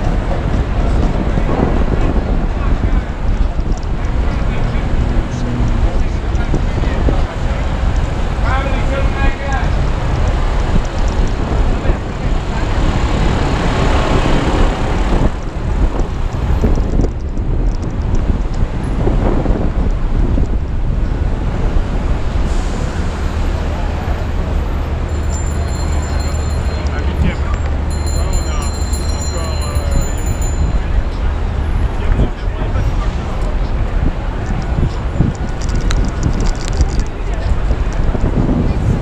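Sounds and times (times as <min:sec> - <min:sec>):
passers-by voices: 0:00.0 - 0:16.7, 0:21.4 - 0:39.0
traffic rumble: 0:00.0 - 0:39.0.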